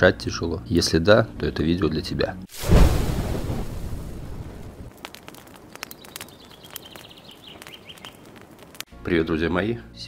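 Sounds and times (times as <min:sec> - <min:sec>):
fire crackling: 0:02.5 - 0:09.0.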